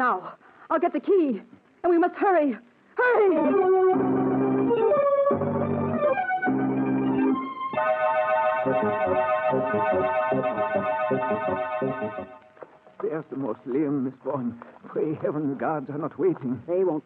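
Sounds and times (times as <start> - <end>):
organ chords: 3.3 - 12.8.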